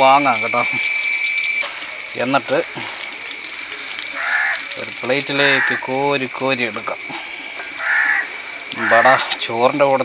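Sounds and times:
background hiss: 0.0s - 10.0s
harsh bird call: 3.6s - 6.0s, 7.7s - 9.4s.

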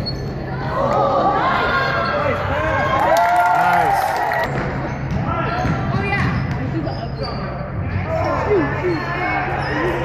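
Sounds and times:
voices of players and spectators: 0.0s - 10.0s.

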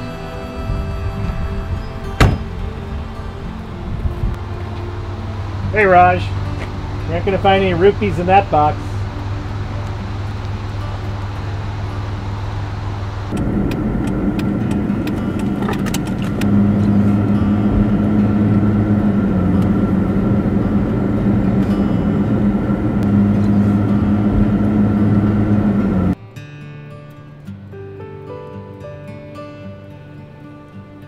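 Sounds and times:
car engine drone: 0.0s - 26.2s
road noise inside car: 0.0s - 26.2s.

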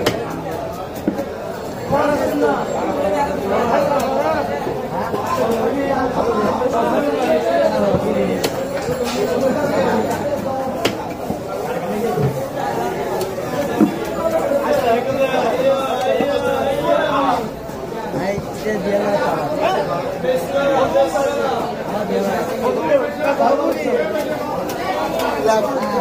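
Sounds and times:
market chatter: 0.0s - 26.0s.

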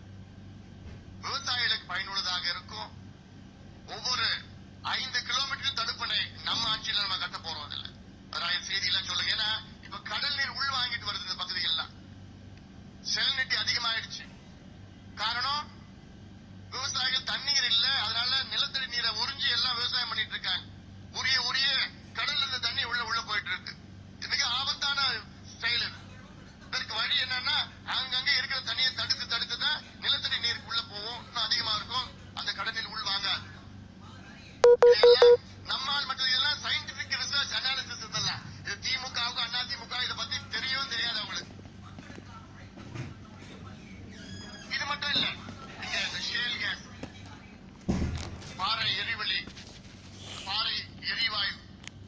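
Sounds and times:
steady low hum: 0.0s - 52.0s
person speaking: 34.6s - 35.4s.

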